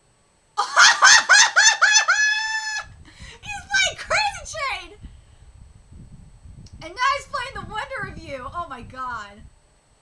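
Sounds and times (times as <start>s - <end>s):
woman cackling laugh: 0.6s - 2.9s.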